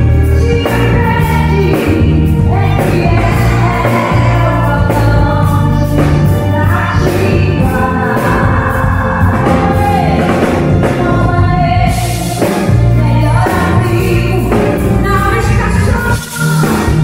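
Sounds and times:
amplified band playing: 0.0s - 17.0s
woman singing gospel: 0.0s - 17.0s.

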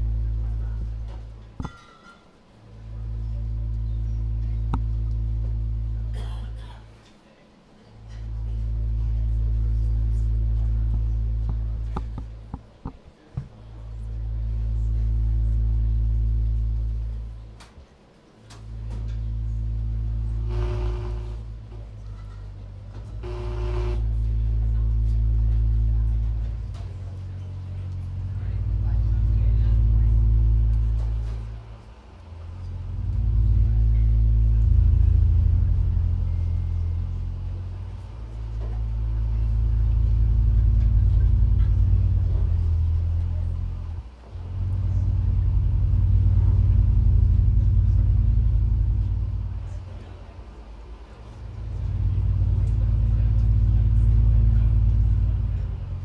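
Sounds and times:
synthesizer drone: 0.0s - 1.8s, 2.5s - 7.0s, 8.0s - 12.6s, 13.7s - 17.6s, 18.6s - 56.0s
synthesizer drone with held tones: 18.7s - 22.0s, 23.2s - 26.6s.

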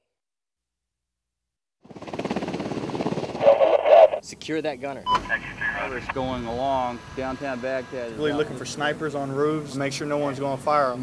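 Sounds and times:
helicopter engine rush: 1.8s - 4.3s, 5.2s - 11.0s
helicopter rotor beat: 1.8s - 4.3s, 5.2s - 11.0s.

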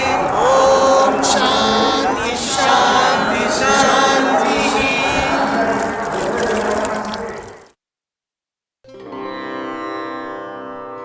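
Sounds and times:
river water rushing: 0.0s - 7.7s
voices: 0.0s - 7.7s.

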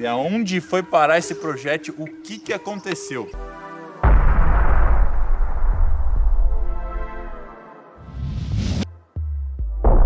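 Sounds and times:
cartridge bursting boom: 4.0s - 6.4s.

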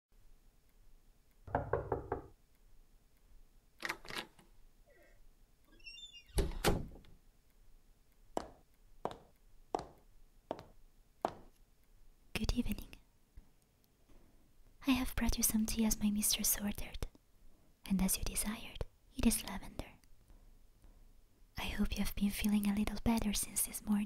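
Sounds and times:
knocking on a door: 1.5s - 2.4s
slow footsteps: 8.3s - 11.6s.

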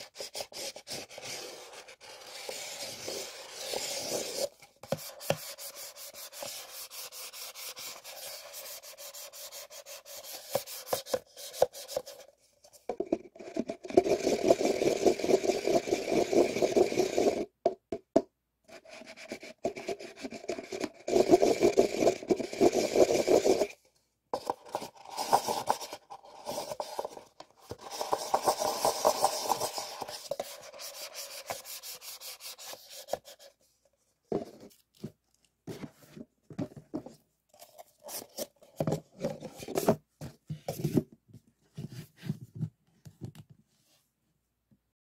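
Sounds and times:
paper cups rubbing and creaking: 20.0s - 23.7s, 24.4s - 33.3s.

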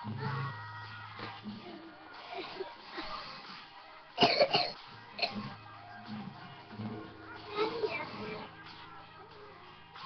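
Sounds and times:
person singing: 0.0s - 10.0s.

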